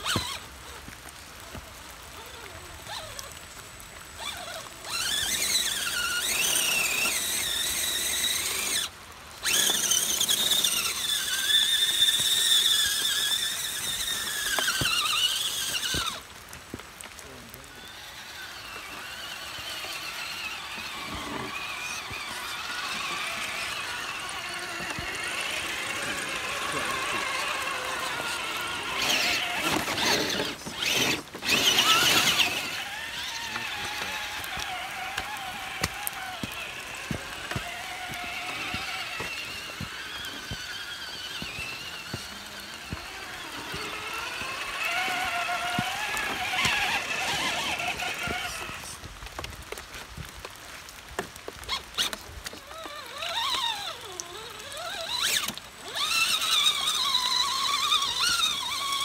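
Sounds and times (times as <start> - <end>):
electric motors whining: 0.0 - 59.0.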